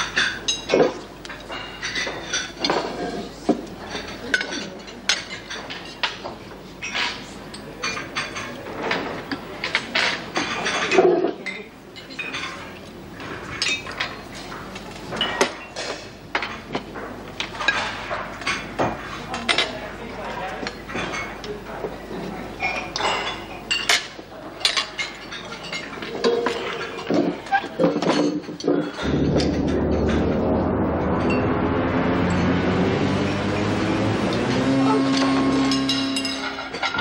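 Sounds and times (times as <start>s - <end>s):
cutlery clinking on plates: 0.0s - 30.2s, 35.0s - 37.0s
murmur of voices: 0.0s - 31.0s
sustained music chord: 29.0s - 36.8s.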